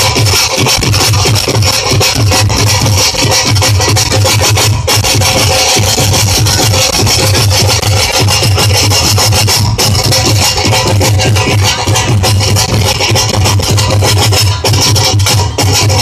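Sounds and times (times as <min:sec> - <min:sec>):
dhol drum beat: 0:00.0 - 0:16.0
folk instrumental ensemble: 0:00.0 - 0:16.0.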